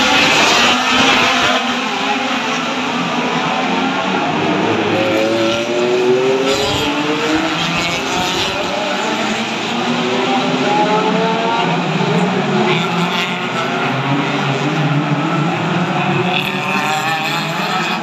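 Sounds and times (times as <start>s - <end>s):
race car engines accelerating past: 0.0s - 18.0s.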